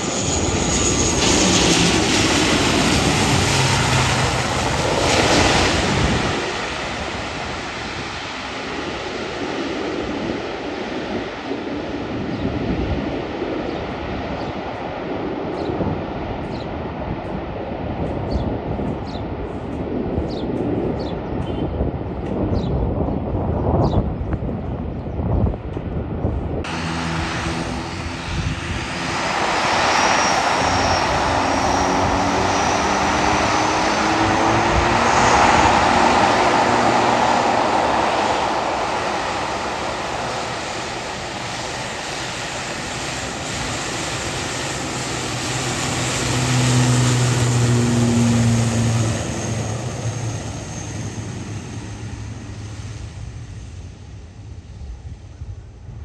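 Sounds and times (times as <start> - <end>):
turboprop engines droning: 0.0 - 56.0
wind on microphone: 0.0 - 56.0.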